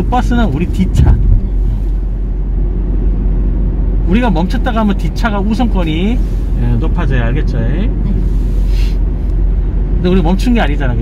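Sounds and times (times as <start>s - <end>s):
car engine and tyre rumble: 0.0s - 11.0s
short hiss: 8.2s - 9.0s.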